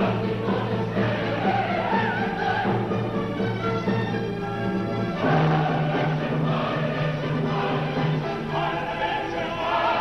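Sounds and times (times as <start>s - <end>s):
orchestra and choir singing chords: 0.0s - 4.0s, 5.0s - 10.0s.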